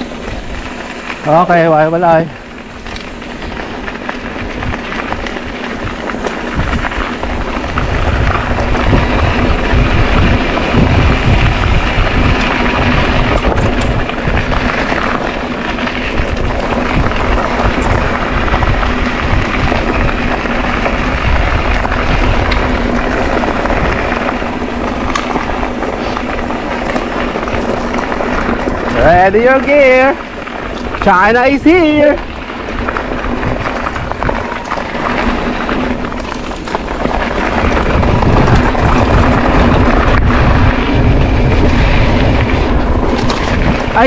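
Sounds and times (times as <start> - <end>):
bike tyres rumbling over dirt: 0.0 - 44.0
wind buffeting microphone: 0.0 - 44.0.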